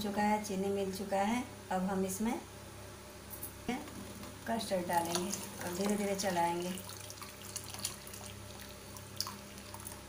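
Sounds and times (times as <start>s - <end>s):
ladle stirring: 3.9s - 10.0s
custard pouring into milk: 4.8s - 10.0s.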